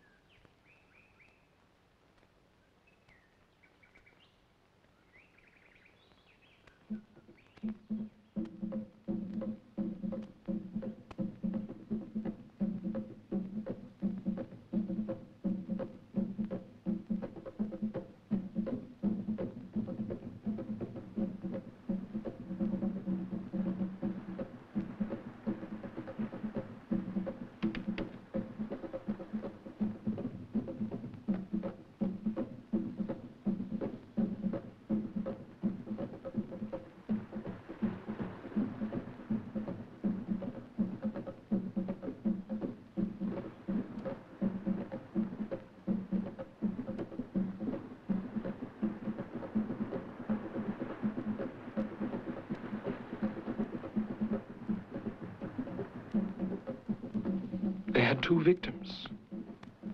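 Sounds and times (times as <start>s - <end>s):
fast drumming: 6.8s - 59.9s.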